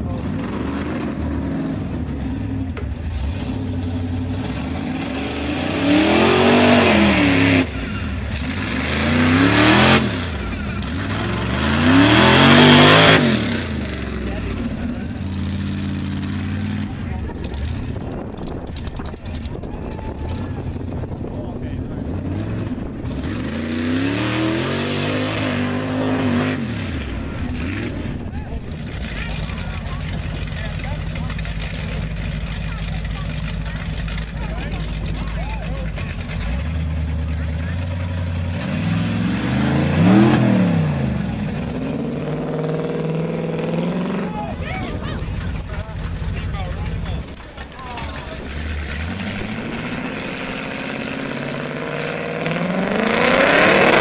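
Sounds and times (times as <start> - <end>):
truck engine revving: 0.0 - 54.0.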